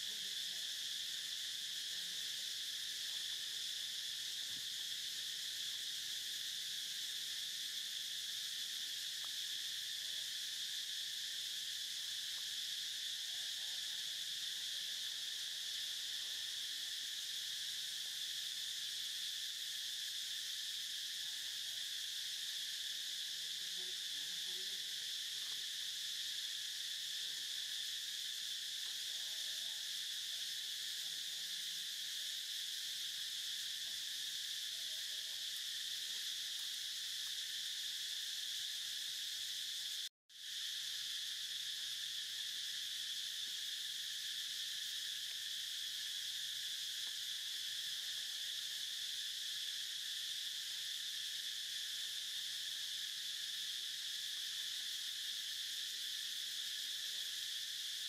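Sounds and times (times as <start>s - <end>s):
insect chorus drone: 0.0s - 58.0s.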